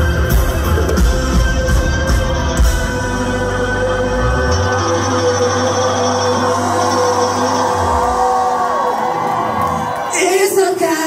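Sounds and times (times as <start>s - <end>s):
rock band playing: 0.0s - 9.9s
crowd cheering and whooping: 4.1s - 10.7s.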